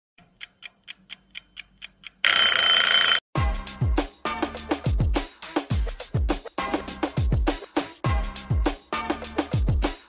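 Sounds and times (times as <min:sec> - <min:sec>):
clock ticking: 0:00.2 - 0:02.2
music with booming kick drum: 0:03.4 - 0:10.0.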